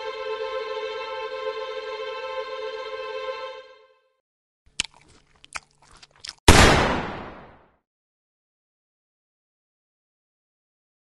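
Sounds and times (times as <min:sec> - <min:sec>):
sudden loud bang: 0:06.5 - 0:07.6.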